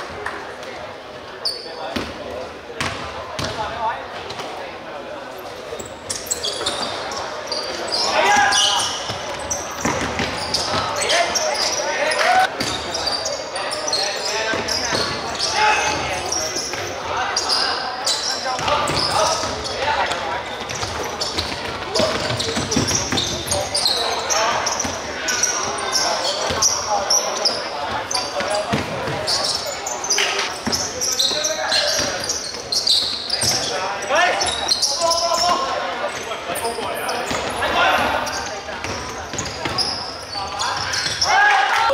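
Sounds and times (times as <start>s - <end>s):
players' voices: 0.0s - 41.9s
shoes squeaking: 5.4s - 41.9s.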